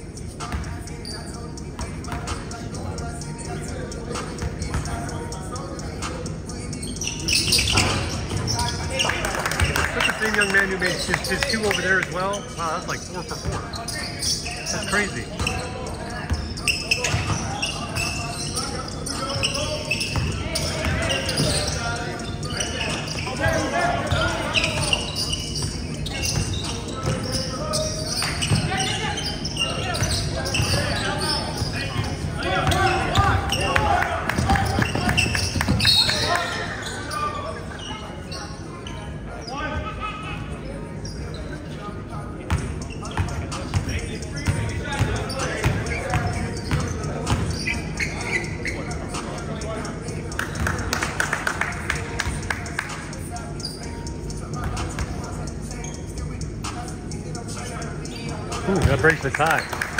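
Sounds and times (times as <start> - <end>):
voices of players and spectators: 0.0 - 59.9.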